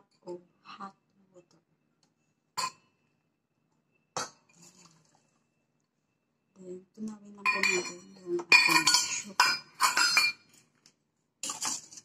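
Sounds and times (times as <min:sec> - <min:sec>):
metal cup clinking against metal: 0:07.4 - 0:10.4.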